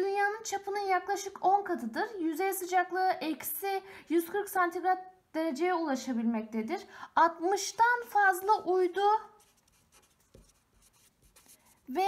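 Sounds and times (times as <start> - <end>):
marker scratching on paper: 9.2 - 12.0.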